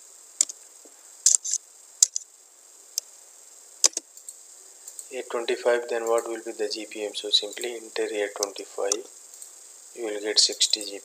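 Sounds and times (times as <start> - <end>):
keyboard typing: 3.8 - 5.1.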